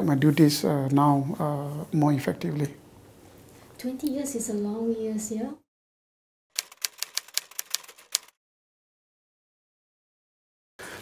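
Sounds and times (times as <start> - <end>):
typewriter key clicks: 6.6 - 8.4.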